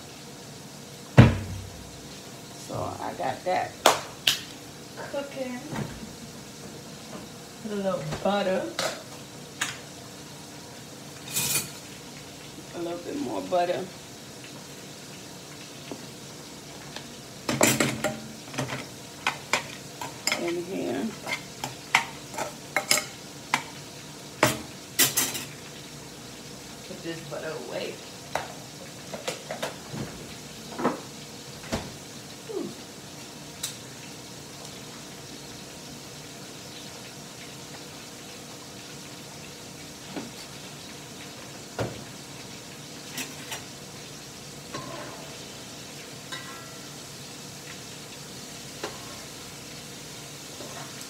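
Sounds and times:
food sizzling in a frying pan: 0.0s - 51.0s
metal utensil scraping a pan: 11.2s - 11.8s, 44.7s - 45.4s, 46.3s - 46.9s, 48.8s - 49.3s, 50.6s - 51.0s.

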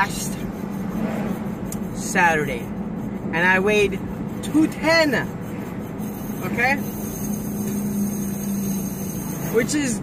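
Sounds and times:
car cabin hum and rushing: 0.0s - 10.0s.

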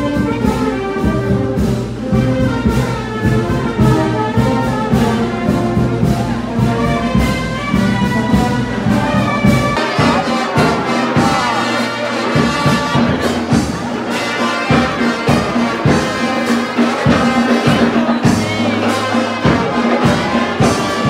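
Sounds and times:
brass band playing march: 0.0s - 21.0s.

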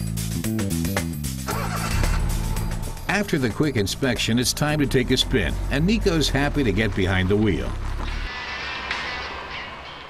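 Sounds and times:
background music: 0.0s - 10.0s
car driving off: 1.4s - 9.9s.

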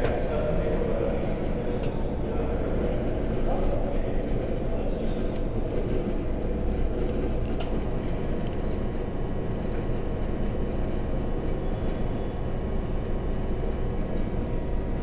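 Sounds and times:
low indistinct murmur: 0.0s - 15.0s.

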